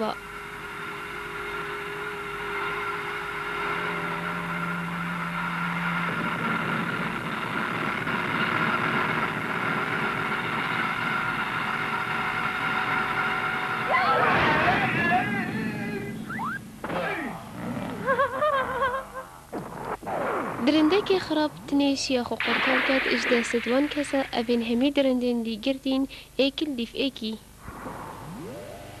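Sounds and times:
held low note: 0:00.0 - 0:08.0, 0:27.6 - 0:29.0
droning music of held chords: 0:00.0 - 0:20.6.

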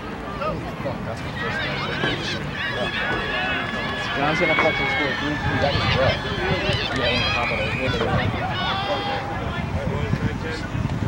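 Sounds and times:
people shouting: 0:01.4 - 0:09.6.

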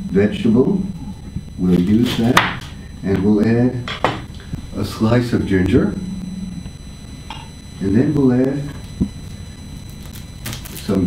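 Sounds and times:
low room hum: 0:00.0 - 0:11.0
man speaking: 0:01.6 - 0:03.9, 0:04.7 - 0:06.1, 0:07.8 - 0:08.8.

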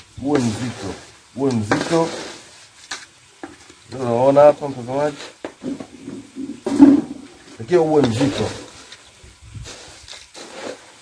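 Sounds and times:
man speaking: 0:00.2 - 0:02.2, 0:03.9 - 0:05.2, 0:07.6 - 0:08.6.

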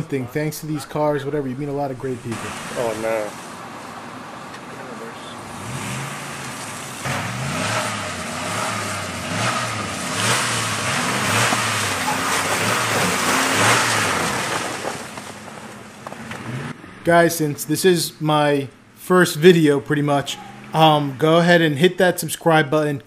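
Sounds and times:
truck engine revving: 0:00.0 - 0:22.7.

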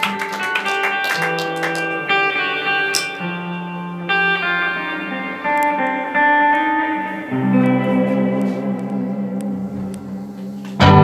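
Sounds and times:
electric guitars ringing low chord: 0:00.0 - 0:11.0.

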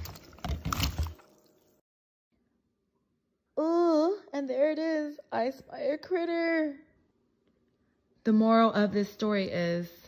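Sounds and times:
strawberries splashing into water: 0:00.0 - 0:01.8.

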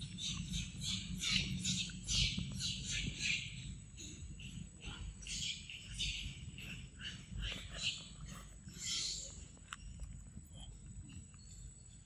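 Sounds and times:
monkey chewing fruit: 0:06.4 - 0:12.0.

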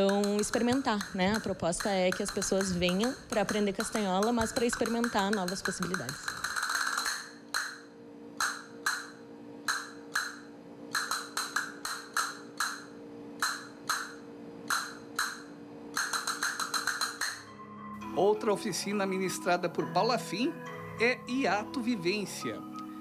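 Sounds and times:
castanets clicking: 0:00.0 - 0:07.8, 0:08.4 - 0:14.1, 0:16.0 - 0:17.5.

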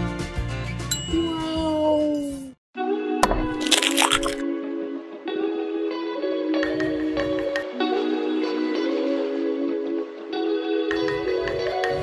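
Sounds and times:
background music: 0:02.8 - 0:12.0
egg cracking: 0:03.2 - 0:04.4
eggshell crackling: 0:03.2 - 0:04.4.

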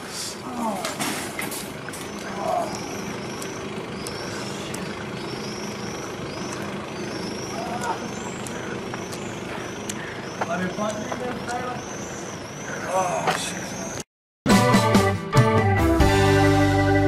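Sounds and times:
low mechanical hum: 0:00.0 - 0:14.0.

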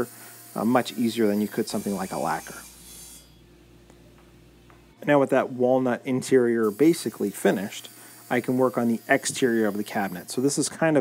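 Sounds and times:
low steady hum: 0:01.6 - 0:06.4.

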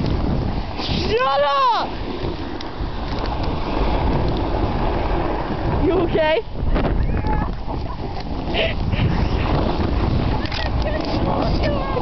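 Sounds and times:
snowboard sliding over snow: 0:00.0 - 0:12.0
wind rushing on microphone: 0:00.0 - 0:12.0.

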